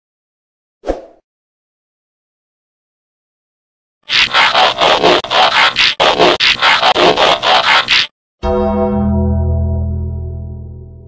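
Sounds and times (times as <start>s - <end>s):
pulsing static glitch noise: 4.1s - 8.1s.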